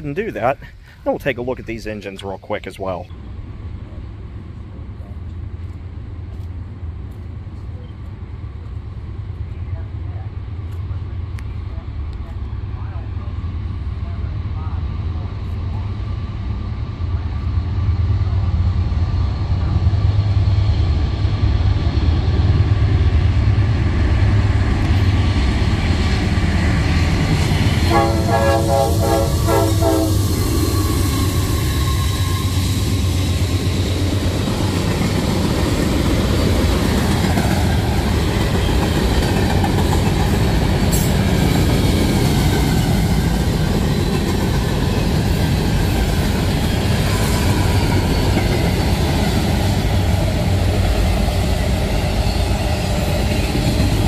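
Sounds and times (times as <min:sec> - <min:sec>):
freight train wheels clattering: 0:26.4 - 0:54.0
train horn: 0:27.8 - 0:30.9.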